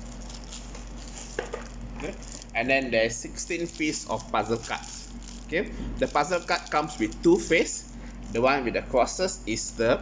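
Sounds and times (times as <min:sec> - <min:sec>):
plastic packaging rustling: 0:00.0 - 0:08.6
steady low hum: 0:00.0 - 0:10.0.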